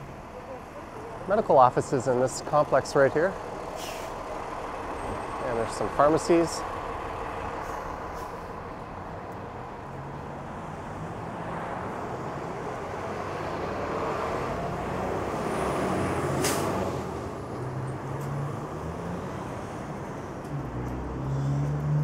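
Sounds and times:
road traffic passing: 0.0s - 22.0s
truck engine drone: 0.0s - 22.0s
air brakes hiss: 3.8s - 4.2s.

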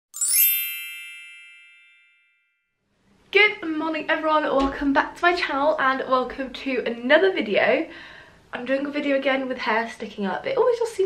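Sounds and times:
bright chime ringing: 0.1s - 2.6s.

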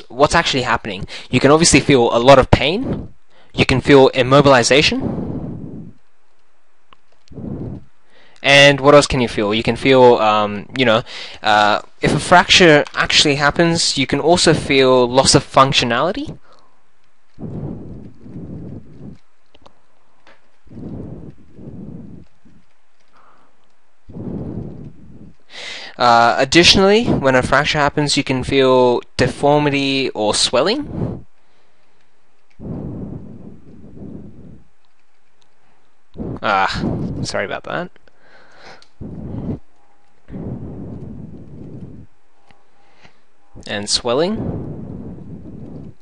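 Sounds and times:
rumbling noise on microphone: 0.3s - 9.9s, 11.6s - 28.6s, 29.2s - 46.0s
person breathing close: 7.2s - 8.4s, 11.0s - 11.4s, 16.4s - 19.2s, 20.2s - 26.0s, 30.9s - 34.8s, 35.6s - 37.2s, 38.0s - 43.6s
faint clicks: 16.5s - 25.5s, 33.6s - 36.2s.

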